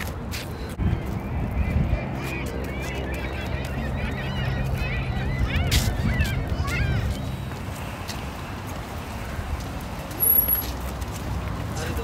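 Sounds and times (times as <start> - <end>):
birds chirping and squealing: 0.4 - 8.4.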